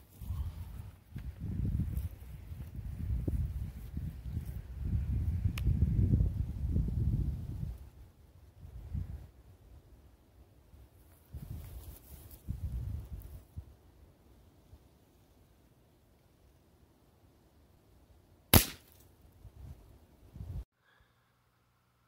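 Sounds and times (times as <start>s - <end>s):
rifle shot: 18.5s - 19.0s.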